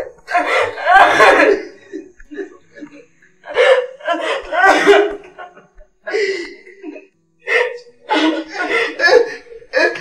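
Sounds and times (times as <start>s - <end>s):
woman sobbing: 0.0s - 10.0s.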